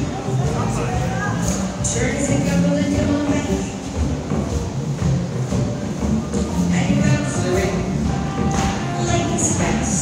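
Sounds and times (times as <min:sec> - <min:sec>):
band playing dance tune: 0:00.0 - 0:10.0
dancers' feet on wooden floor: 0:00.0 - 0:10.0.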